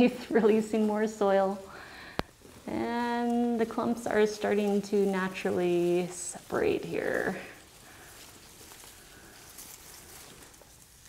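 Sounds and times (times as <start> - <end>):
soil and roots rustling: 0.0 - 11.0.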